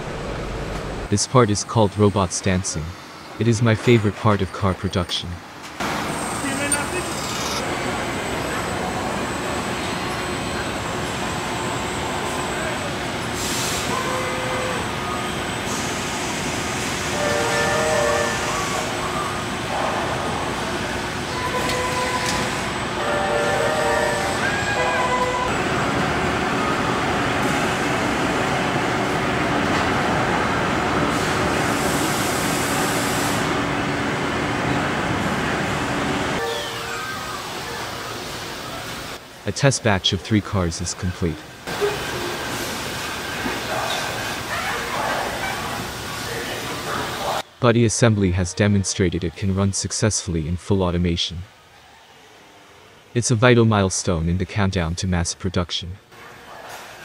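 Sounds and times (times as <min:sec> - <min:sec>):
machinery low hum: 0:00.0 - 0:05.0.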